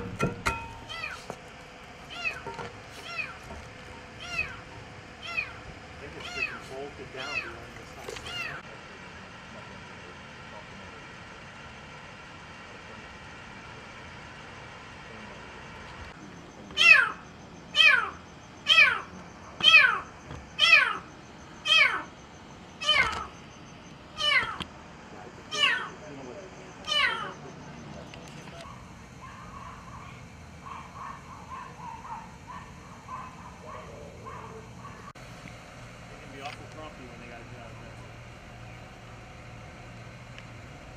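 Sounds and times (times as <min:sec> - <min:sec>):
kitten meowing: 0:02.1 - 0:02.4, 0:04.2 - 0:04.6, 0:05.2 - 0:05.6, 0:06.2 - 0:07.6, 0:08.2 - 0:08.6, 0:17.8 - 0:21.0, 0:21.6 - 0:22.1, 0:22.8 - 0:23.3, 0:24.2 - 0:24.6, 0:25.5 - 0:25.9, 0:26.8 - 0:27.4.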